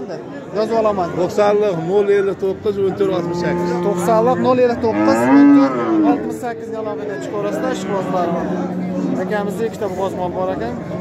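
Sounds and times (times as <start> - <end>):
cow mooing: 2.8 - 11.0.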